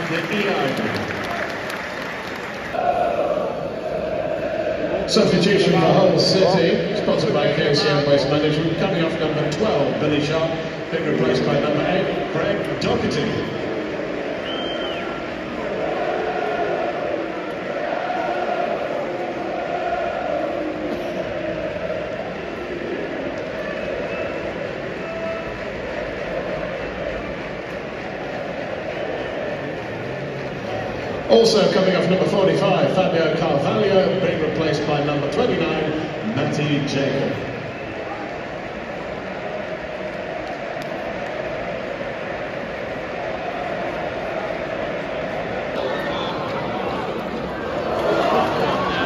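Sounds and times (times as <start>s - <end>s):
crowd chanting: 0.0s - 49.0s
stadium crowd din: 0.0s - 49.0s.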